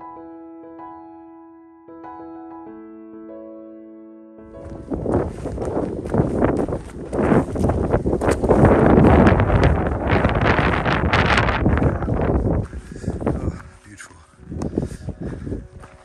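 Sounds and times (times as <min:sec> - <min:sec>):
footsteps on stony path: 0:04.6 - 0:16.0
wind buffeting microphone: 0:04.6 - 0:16.0.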